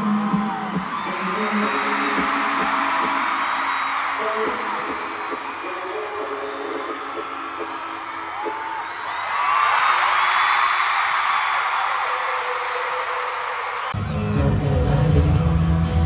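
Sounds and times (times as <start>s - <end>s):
crowd screaming and cheering: 0.0s - 16.0s.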